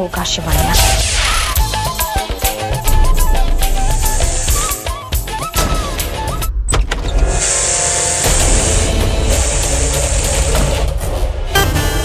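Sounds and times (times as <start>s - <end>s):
dramatic background score: 0.0s - 12.0s
high hissing sound effects: 0.5s - 5.6s, 7.3s - 11.1s.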